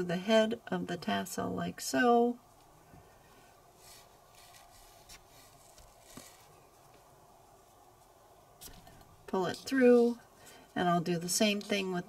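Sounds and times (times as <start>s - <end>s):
needle and thread handling: 3.4s - 10.8s.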